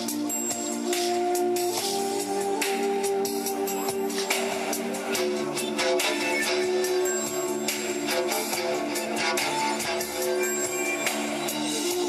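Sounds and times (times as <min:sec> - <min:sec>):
backing track with steady beat: 0:00.0 - 0:12.0
wooden flute melody: 0:00.0 - 0:12.0.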